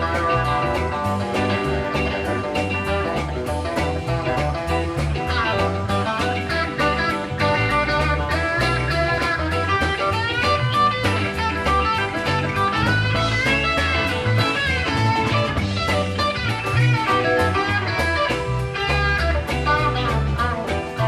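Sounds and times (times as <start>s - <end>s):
bass guitar: 0.0s - 21.0s
electric lead guitar runs: 0.0s - 21.0s
steady drum beat: 0.0s - 21.0s.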